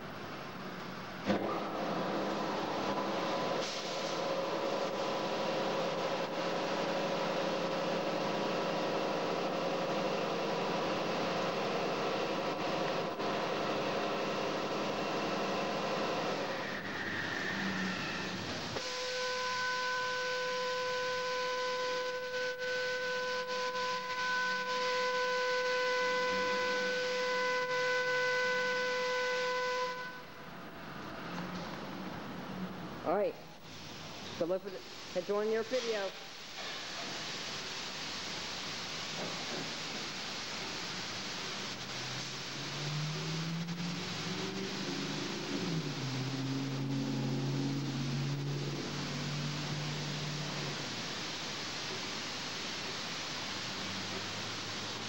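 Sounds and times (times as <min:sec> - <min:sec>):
car wash rushing noise: 0:00.0 - 0:22.1, 0:30.2 - 0:55.0
high multi-tone machine whine: 0:04.2 - 0:30.6, 0:41.8 - 0:51.3.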